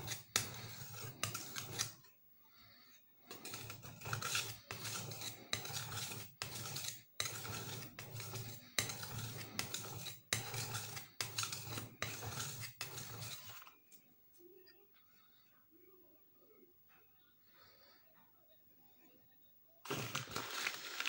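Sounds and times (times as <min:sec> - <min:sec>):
blade scraping on whetstone: 0:00.0 - 0:02.1, 0:03.2 - 0:13.7.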